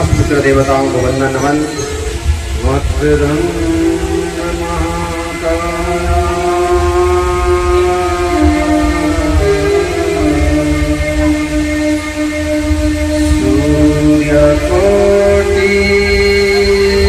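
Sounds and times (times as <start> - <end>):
devotional music over loudspeaker: 0.0 - 17.0.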